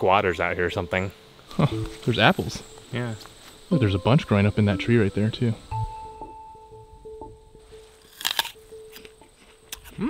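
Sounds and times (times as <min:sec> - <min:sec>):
gentle plucked string music: 0:00.4 - 0:10.0
apple bite crunch: 0:08.0 - 0:09.1.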